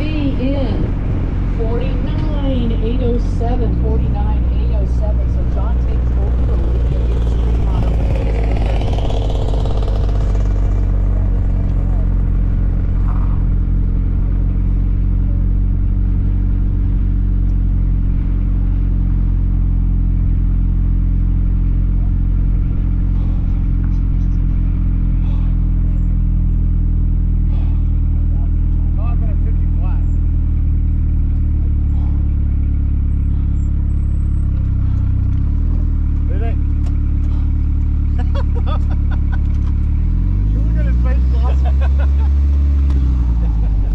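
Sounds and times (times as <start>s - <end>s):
car engine droning at low speed: 0.0s - 43.9s.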